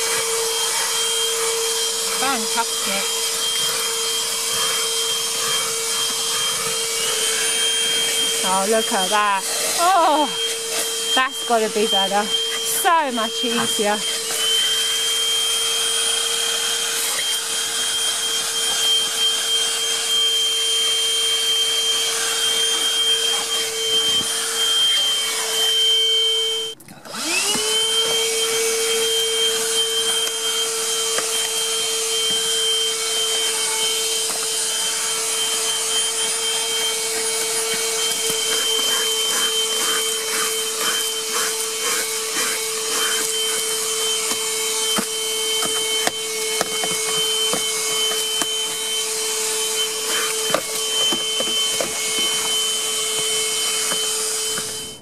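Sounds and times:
handheld vacuum whining: 0:00.0 - 0:55.0.

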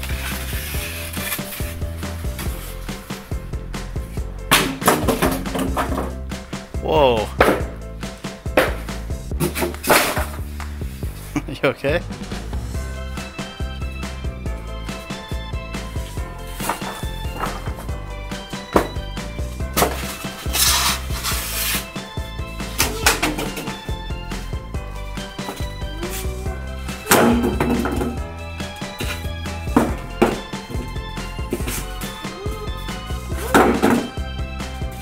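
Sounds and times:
background music with held tones: 0:00.0 - 0:35.0
sharp knocks: 0:07.4 - 0:07.8, 0:08.4 - 0:10.4.

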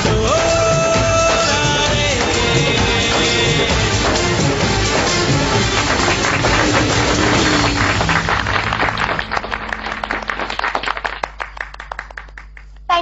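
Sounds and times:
dance music: 0:00.0 - 0:08.7
audience applause: 0:04.0 - 0:12.7.

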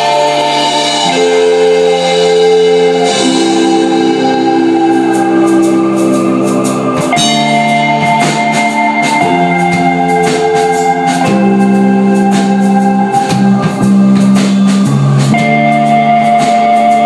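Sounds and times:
drum cymbal hits: 0:00.0 - 0:17.0
electric guitar chords: 0:00.0 - 0:17.0.

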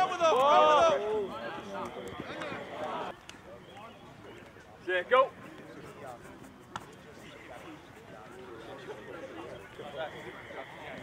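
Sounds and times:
faint chatter of people talking: 0:00.0 - 0:11.0.

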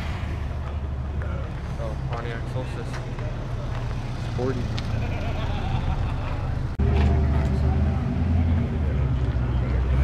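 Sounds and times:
background chatter of people: 0:00.4 - 0:10.0.

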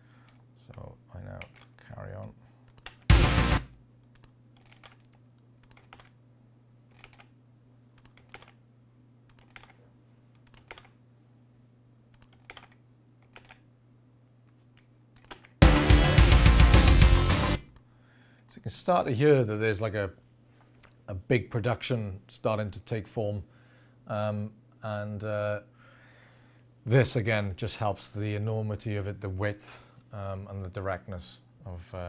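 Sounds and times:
keyboard and mouse clicks: 0:00.3 - 0:01.7, 0:02.7 - 0:03.1, 0:04.1 - 0:06.2, 0:06.9 - 0:07.3, 0:08.0 - 0:08.6, 0:09.3 - 0:11.0, 0:12.1 - 0:13.6, 0:14.5 - 0:15.6
drum kit playback: 0:03.1 - 0:03.8, 0:15.6 - 0:17.7.

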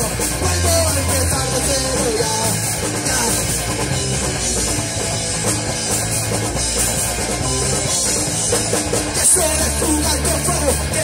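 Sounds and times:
drum kit pounding: 0:00.0 - 0:11.0
electric guitars: 0:00.0 - 0:11.0.

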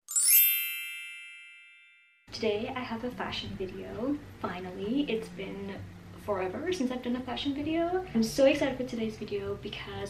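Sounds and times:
bell-like chime: 0:00.0 - 0:02.3.

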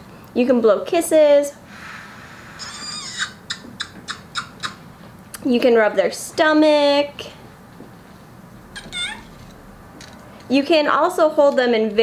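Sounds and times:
toy high chirps: 0:08.8 - 0:09.3.

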